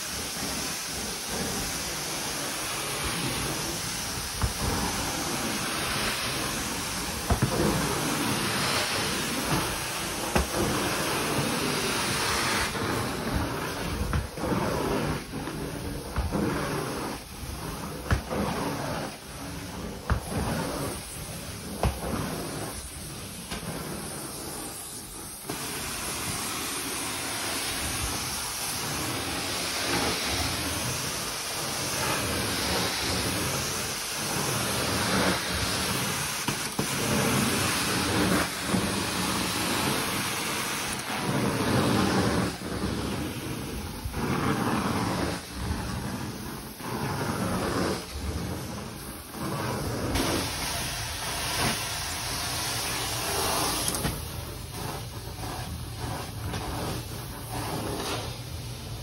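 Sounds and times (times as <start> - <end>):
carpet extraction wand hissing: 0.0 - 59.0.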